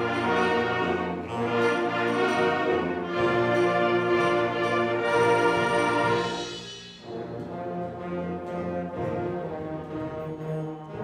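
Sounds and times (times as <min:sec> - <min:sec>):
concert band playing: 0:00.0 - 0:10.6.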